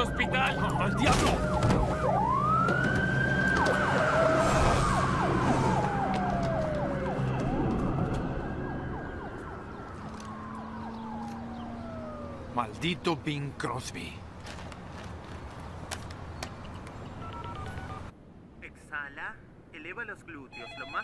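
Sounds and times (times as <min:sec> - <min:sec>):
ambulance siren wailing: 0:00.0 - 0:13.0.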